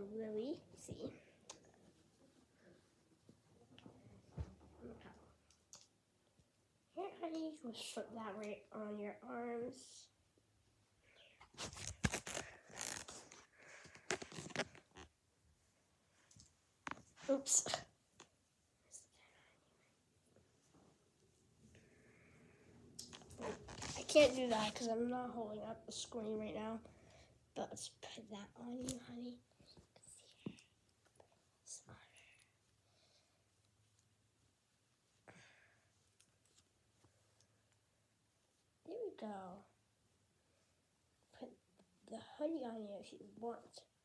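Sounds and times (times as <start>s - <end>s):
fabric rustling: 11.5s - 15.2s, 23.1s - 24.9s.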